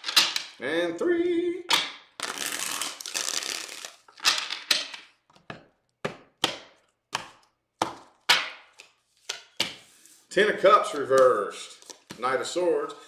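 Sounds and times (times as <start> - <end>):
cards riffle-shuffled: 1.8 - 4.3, 7.2 - 12.3.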